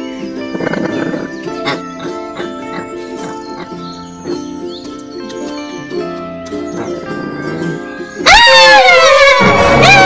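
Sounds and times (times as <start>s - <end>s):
soft background music: 0.0s - 8.7s
high-pitched scream of fright: 8.2s - 10.0s.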